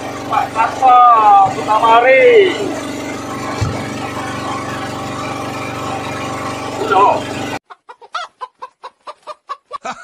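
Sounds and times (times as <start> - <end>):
small boat engine idling: 0.0 - 7.6
person exclaiming: 6.8 - 7.3.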